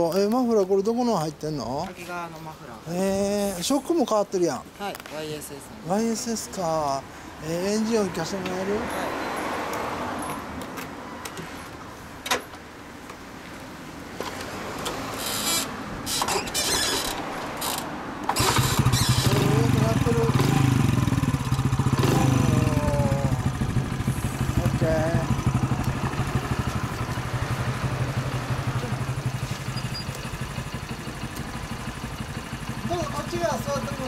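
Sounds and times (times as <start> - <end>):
motorcycle kick-start: 14.2 - 22.8, 28.4 - 33.7
motorcycle engine idling: 18.4 - 34.0.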